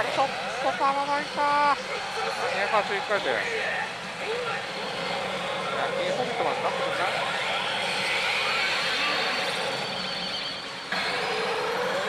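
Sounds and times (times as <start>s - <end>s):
steel balls and machine din: 0.0s - 12.0s
electronic game effects: 3.8s - 12.0s.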